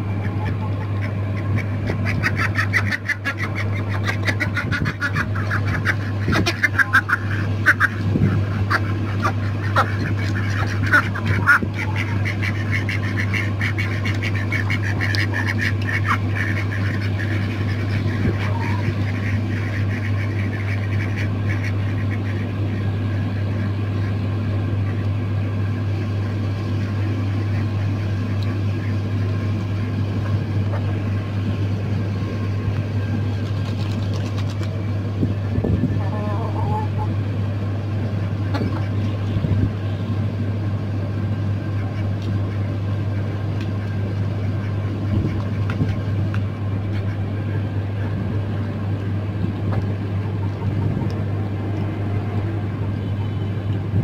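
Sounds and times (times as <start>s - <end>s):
ducks and chickens calling: 0.0s - 54.0s
low mechanical hum: 0.0s - 54.0s.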